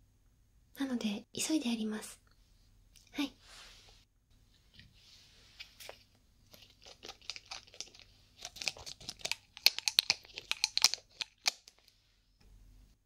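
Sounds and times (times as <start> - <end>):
bottle cap crackling and clicking: 6.5 - 11.9.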